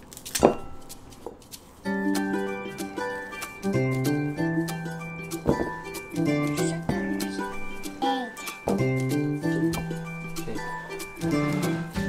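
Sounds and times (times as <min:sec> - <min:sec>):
banana stem snapping: 0:00.0 - 0:01.6
banana peel crackling: 0:00.0 - 0:03.7
plucked guitar music: 0:01.8 - 0:12.0.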